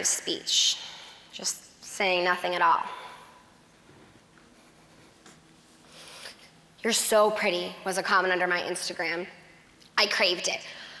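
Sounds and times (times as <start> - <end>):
faint steady hum: 0.0 - 11.0
woman's voice: 6.8 - 9.3, 10.0 - 10.7.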